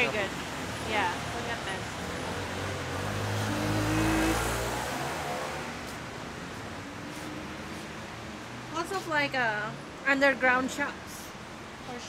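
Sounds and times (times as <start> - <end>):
vehicle accelerating past: 1.9 - 6.0.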